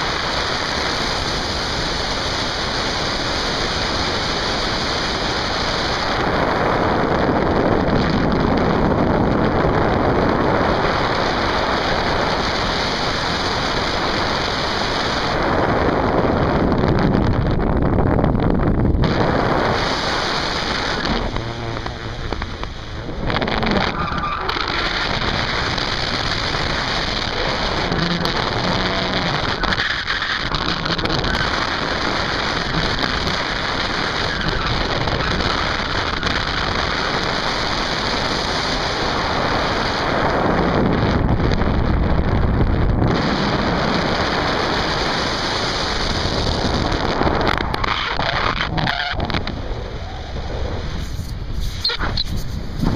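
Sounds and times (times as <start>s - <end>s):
wind roaring over microphone: 0.0s - 52.9s.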